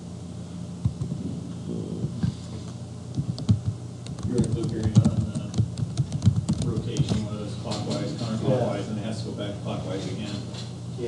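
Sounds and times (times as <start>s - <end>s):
typing on computer keyboard: 3.2s - 7.2s.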